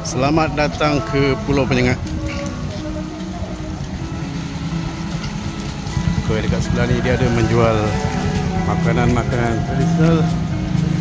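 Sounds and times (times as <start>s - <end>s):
melody of held notes: 0.0s - 11.0s
noisy outdoor haze: 0.0s - 11.0s.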